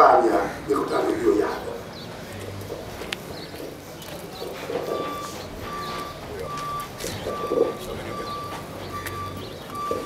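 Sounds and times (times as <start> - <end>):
electronic beeper beeping: 4.9 - 10.0.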